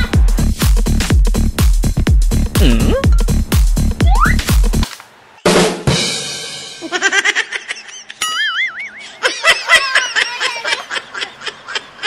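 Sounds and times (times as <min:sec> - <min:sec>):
music: 0:00.0 - 0:06.8
cartoon clicks and chirps: 0:04.0 - 0:04.5.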